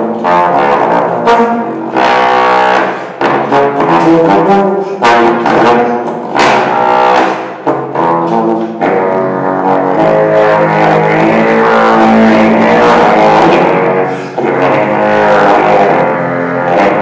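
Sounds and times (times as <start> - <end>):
bass trombone low notes: 0.0 - 17.0.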